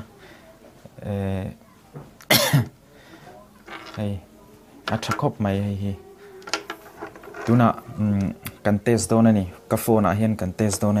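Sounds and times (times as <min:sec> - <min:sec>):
person coughing: 0:02.3 - 0:02.7.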